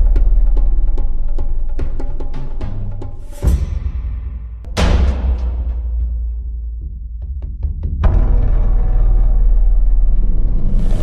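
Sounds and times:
deep sustained bass rumble: 0:08.0 - 0:11.0.

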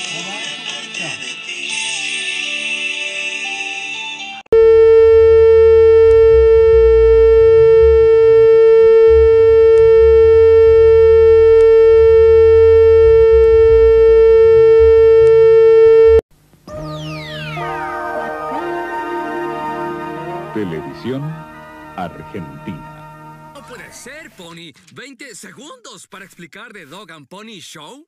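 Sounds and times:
steady test tone: 0:04.6 - 0:16.2
low buzz: 0:04.6 - 0:17.9
channel ident music: 0:16.7 - 0:24.0.

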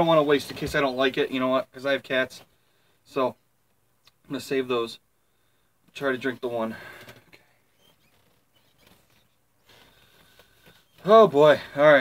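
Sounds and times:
faint rustle: 0:05.8 - 0:12.0.

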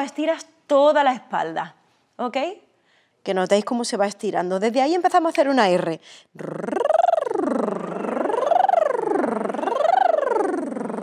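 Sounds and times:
person trilling rolled r sliding in pitch: 0:06.4 - 0:11.0.

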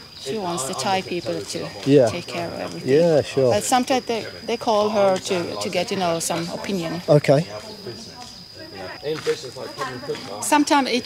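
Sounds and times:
quiet voices talking: 0:00.0 - 0:11.0.

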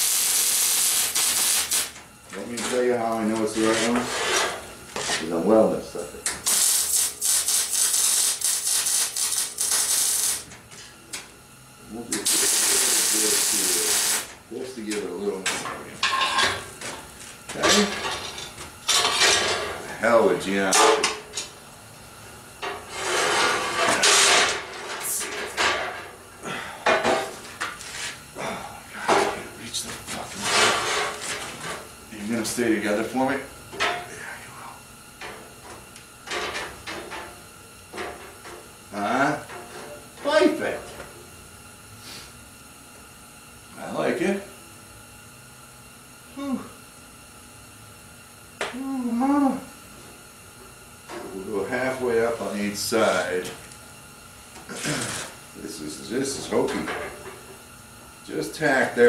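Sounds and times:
arc welder crackling and hissing: 0:00.0 - 0:59.0.

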